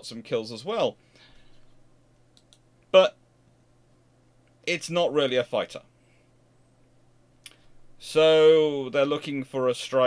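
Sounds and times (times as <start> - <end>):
man speaking: 0.0 - 1.0, 3.0 - 3.2, 4.6 - 5.9, 8.0 - 10.0
faint breath: 1.0 - 1.8, 5.9 - 6.4
small clicks: 2.3 - 2.7.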